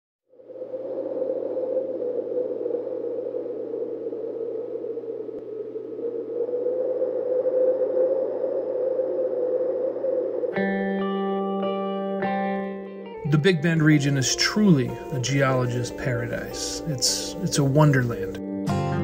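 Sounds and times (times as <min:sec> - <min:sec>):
hissing whooshing drone: 0:00.3 - 0:11.8
low hum: 0:00.3 - 0:12.5.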